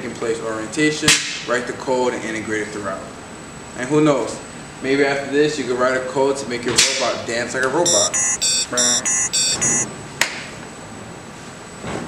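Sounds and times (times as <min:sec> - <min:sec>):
high-pitched electronic beeps: 0:07.9 - 0:09.9.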